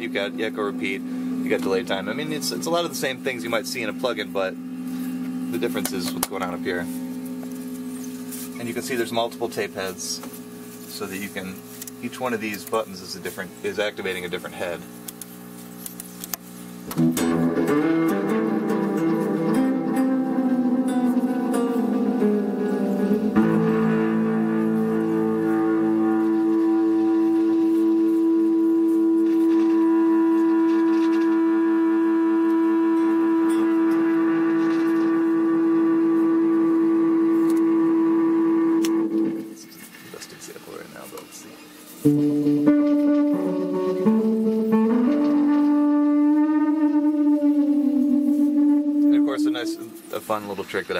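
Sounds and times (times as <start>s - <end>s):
electric guitar with echo: 16.9s - 39.7s, 42.0s - 50.1s.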